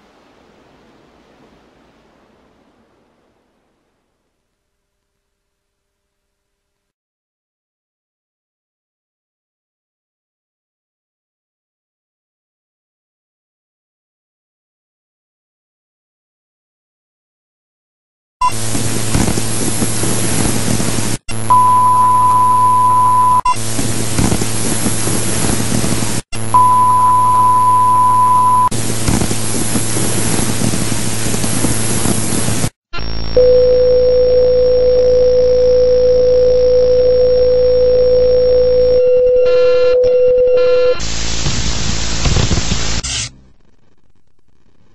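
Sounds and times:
loud static hiss: 0.0 - 6.7, 18.5 - 33.5, 40.6 - 44.9
steady high beep: 21.5 - 23.4, 26.6 - 28.7
long steady lower tone: 33.3 - 41.0.

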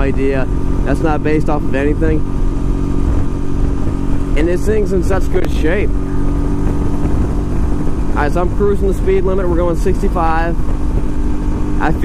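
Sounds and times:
motorcycle engine cruising: 0.0 - 12.0
wind noise on microphone: 0.0 - 12.0.

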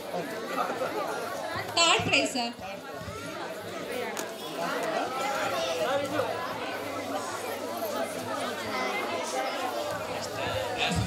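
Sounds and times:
crowd talking in a large hall: 0.0 - 11.0.

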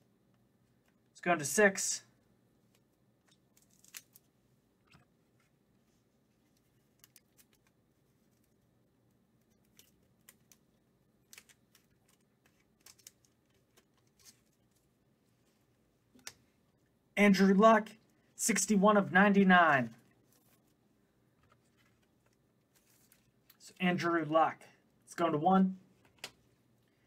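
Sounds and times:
trading cards clicking and rustling: 2.7 - 4.3, 6.5 - 8.5, 9.4 - 14.9.

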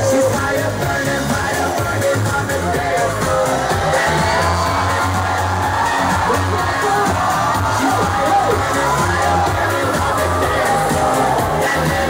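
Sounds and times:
crowd cheering and whooping: 0.0 - 1.1, 2.4 - 12.0
loud dance music: 0.0 - 12.0.

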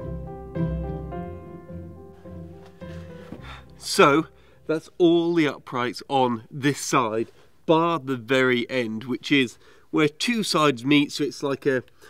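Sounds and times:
held string notes: 0.0 - 4.9
man speaking: 3.8 - 11.9.

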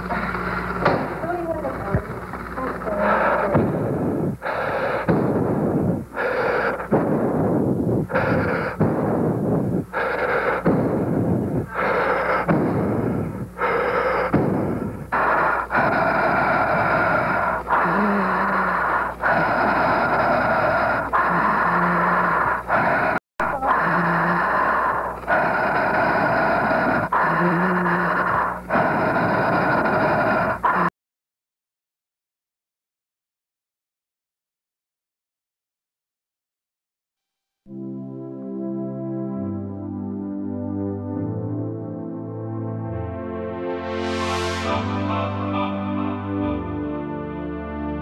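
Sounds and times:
heavy breathing into microphone: 0.0 - 30.9
low voice hum: 0.0 - 30.9.

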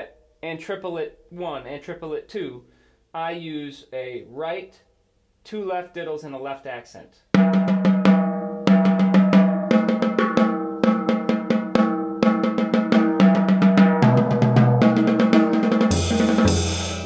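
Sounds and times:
lower drum: 7.4 - 17.0
snare drum lick: 7.4 - 17.0.

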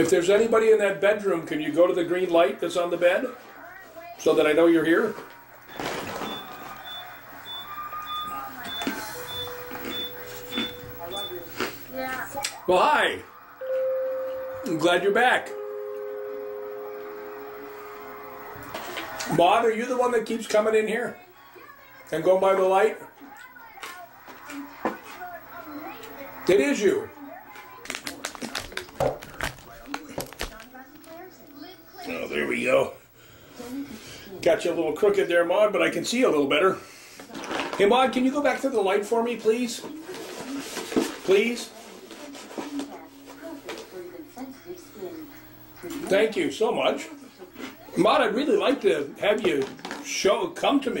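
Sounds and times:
high-pitched electronic beeps: 5.7 - 11.8, 12.7 - 18.8
steady low electronic tone: 12.7 - 19.0.

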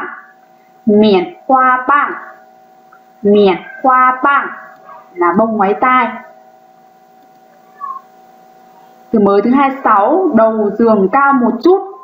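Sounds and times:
low background hum: 0.0 - 12.0
faint cat meow: 7.6 - 8.1.

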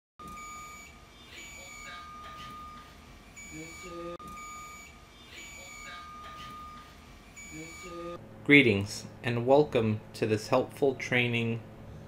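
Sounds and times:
alarm panel steady high tone: 0.2 - 8.2
higher electronic beep: 0.2 - 8.2.

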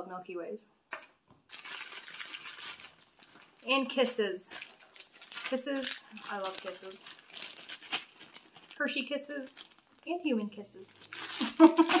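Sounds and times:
wrapped candies clinking and rustling: 1.0 - 10.1, 10.8 - 12.0.

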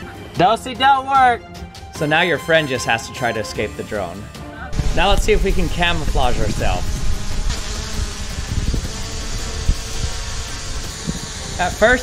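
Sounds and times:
drone propellers buzzing: 4.7 - 12.0.

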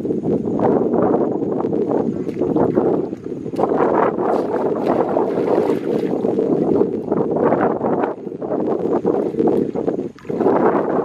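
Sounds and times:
muddy water splashing: 1.8 - 11.0.

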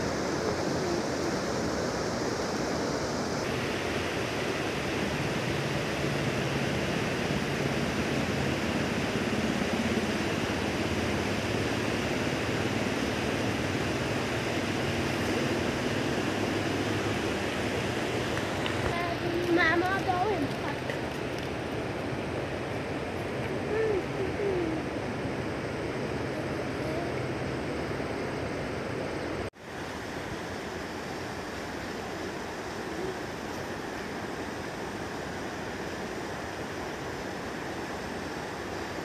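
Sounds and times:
river rushing over boulders: 0.0 - 39.0.

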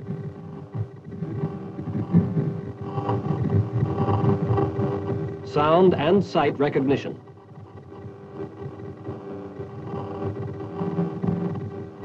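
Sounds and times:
fluttering low rumble: 0.0 - 6.4
steady radar hum: 0.0 - 12.0.

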